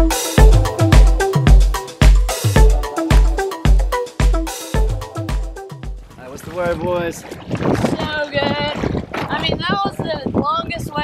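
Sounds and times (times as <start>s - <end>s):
water sloshing: 5.8s - 10.6s
wind buffeting camera: 6.0s - 11.0s.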